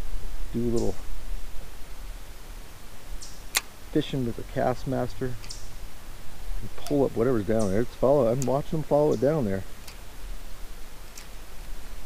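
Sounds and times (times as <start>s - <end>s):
low steady rumble: 0.0s - 12.0s
sharp click: 3.2s - 3.7s, 8.4s - 8.6s.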